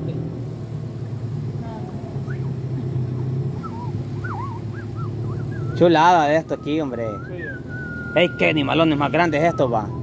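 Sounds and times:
outboard motor humming: 0.0s - 10.0s.

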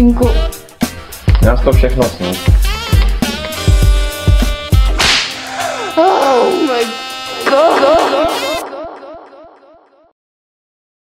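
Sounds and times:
whip-like swoosh effect: 5.0s - 5.4s.

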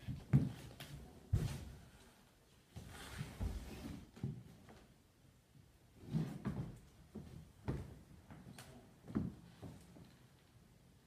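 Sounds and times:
feet thumping on wooden floor: 1.3s - 1.8s.

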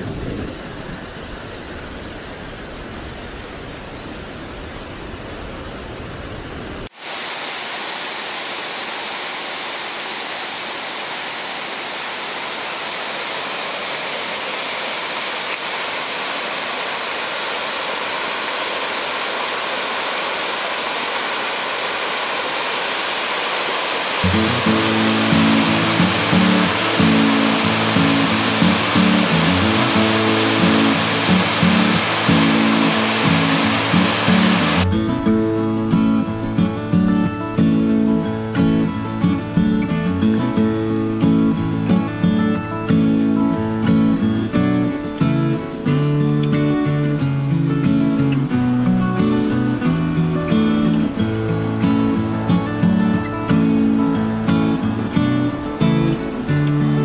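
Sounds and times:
fast stream rushing: 6.8s - 34.9s, 47.9s - 57.0s
water pouring over weir: 18.4s - 34.9s
music playing: 24.2s - 57.0s.

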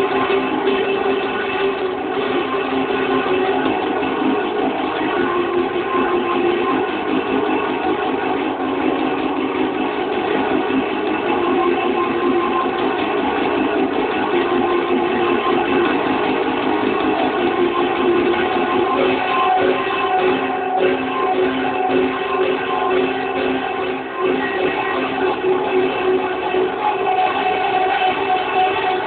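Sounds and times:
guitar music: 0.0s - 29.0s.

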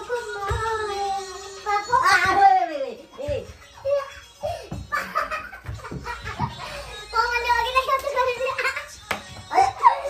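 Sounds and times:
excited high-pitched voices: 0.0s - 10.0s
people laughing: 4.7s - 6.8s, 8.3s - 10.0s.

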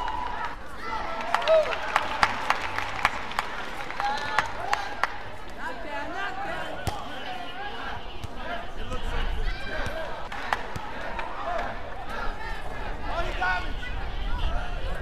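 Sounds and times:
arena voices: 0.0s - 15.0s.

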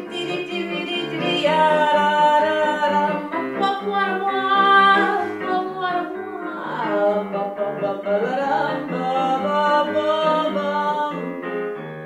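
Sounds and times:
instrumental accompaniment: 0.0s - 12.0s.

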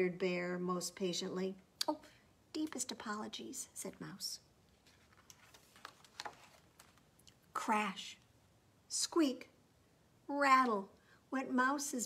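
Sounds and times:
paper page turning: 4.7s - 7.4s.

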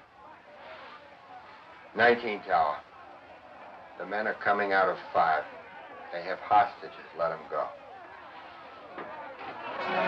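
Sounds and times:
muffled voices: 0.0s - 10.0s.

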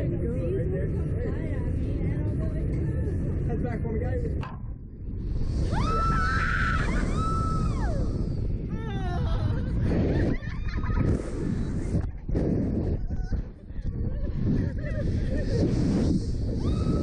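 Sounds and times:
wind rushing over microphone: 0.0s - 17.0s
people screaming: 5.6s - 8.4s, 16.6s - 17.0s
people laughing: 8.9s - 11.7s, 13.0s - 15.8s.

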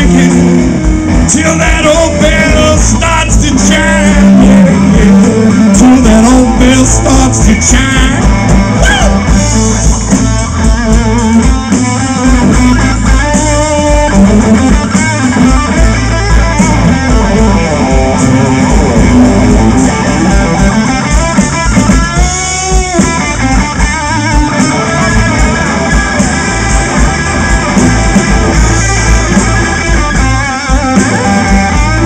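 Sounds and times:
bass guitar: 0.0s - 32.0s
drums: 0.0s - 32.0s
electric guitar lead: 0.0s - 32.0s.

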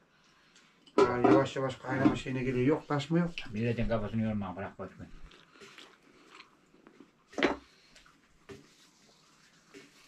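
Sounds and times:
quiet chewing: 5.0s - 10.0s.

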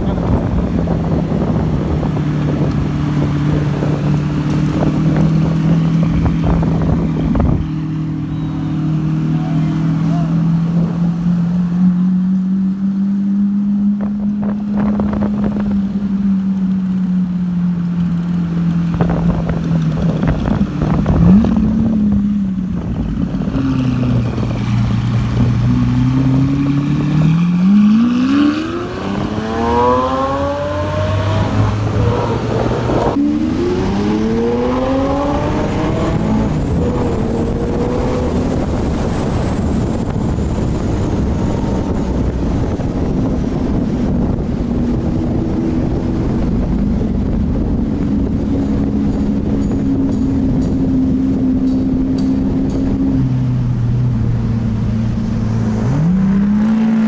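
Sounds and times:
car engine revving: 0.0s - 57.0s.

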